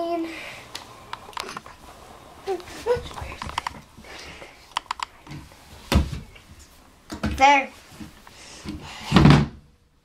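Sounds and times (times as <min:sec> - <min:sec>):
cards clicking and tapping: 0:04.8 - 0:05.1.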